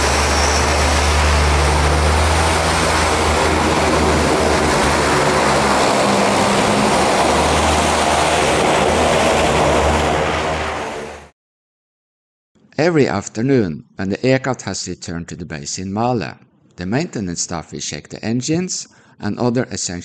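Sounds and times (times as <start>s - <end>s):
turboprop engines droning: 0.0s - 11.3s.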